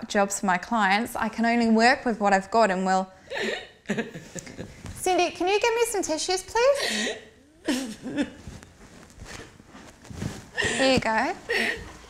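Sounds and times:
woman crying: 6.6 - 8.4, 10.6 - 11.9.

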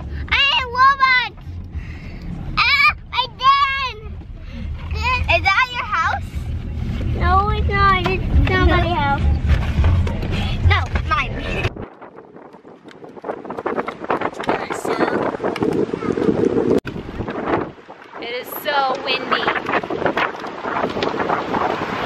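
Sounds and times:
car cabin rumble: 0.0 - 11.9
wind buffeting microphone: 0.0 - 22.0
children's voices: 0.2 - 1.4, 4.8 - 6.4, 7.2 - 9.4, 14.4 - 16.6.

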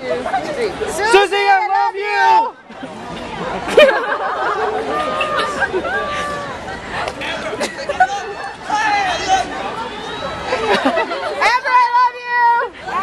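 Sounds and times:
people talking in a crowd: 0.0 - 13.0.

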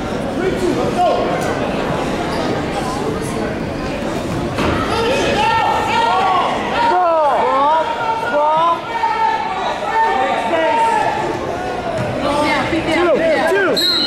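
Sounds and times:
crowd voices: 0.0 - 14.0.

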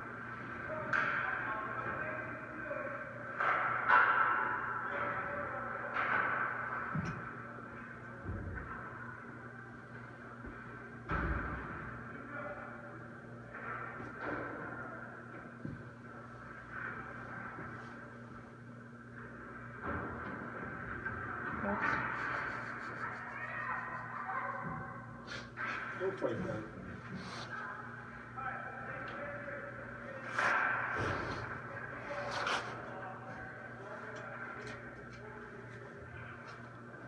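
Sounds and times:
faint voices: 0.0 - 37.0
steady low hum: 0.0 - 37.0.

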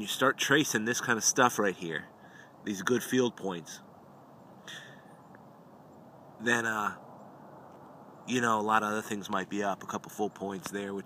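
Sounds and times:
faint background hiss: 0.0 - 11.0
soft breath: 2.2 - 2.6, 4.6 - 5.2.

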